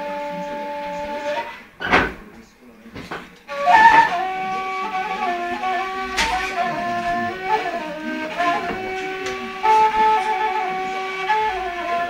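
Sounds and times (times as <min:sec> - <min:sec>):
end-blown flute melody: 0:00.0 - 0:01.7, 0:03.5 - 0:12.0.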